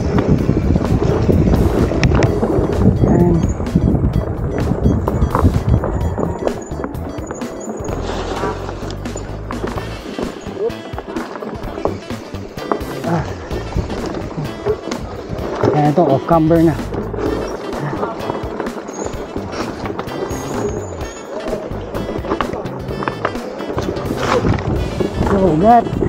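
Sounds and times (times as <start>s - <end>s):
background music: 0.0s - 26.0s
bike knocks and rattles: 0.0s - 26.0s
bike tyres rumbling on dirt trail: 0.0s - 26.0s.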